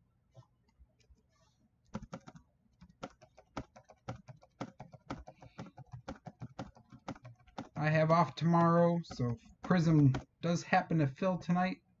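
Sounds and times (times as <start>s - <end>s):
typing on computer keyboard: 1.9s - 10.3s.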